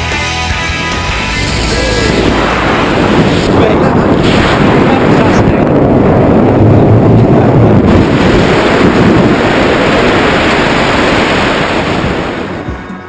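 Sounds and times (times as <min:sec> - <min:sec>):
wind buffeting microphone: 0:01.3 - 0:13.0.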